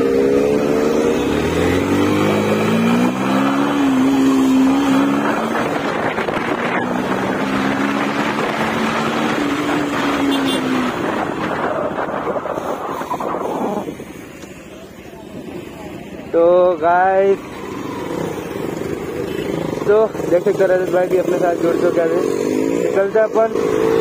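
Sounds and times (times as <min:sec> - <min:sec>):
wind and road noise: 0:00.0 - 0:24.0.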